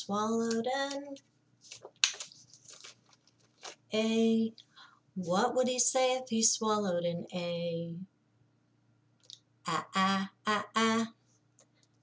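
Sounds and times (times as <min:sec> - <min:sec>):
paper and plastic rustling: 0:00.4 - 0:04.0.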